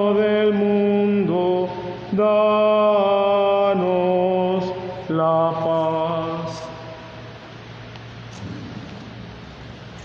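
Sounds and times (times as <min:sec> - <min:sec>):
electric fans whooshing: 0:00.0 - 0:10.0
faint steady hum: 0:00.0 - 0:10.0.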